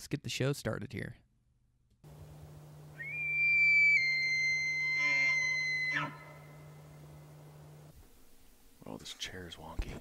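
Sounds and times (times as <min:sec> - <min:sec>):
low steady hum: 0:02.0 - 0:10.0
high whistle-like tone: 0:03.0 - 0:06.2.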